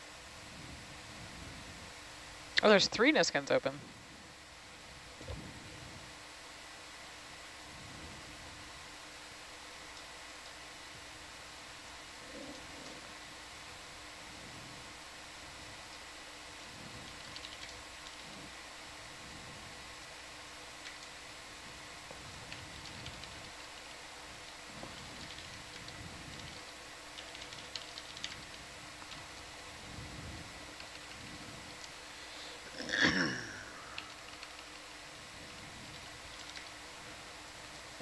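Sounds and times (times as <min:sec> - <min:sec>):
faint steady hiss: 0:00.0 - 0:38.0.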